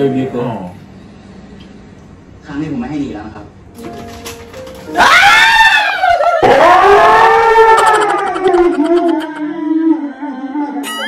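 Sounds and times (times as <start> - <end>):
person squealing with laughter: 5.0 - 9.9, 10.8 - 11.0.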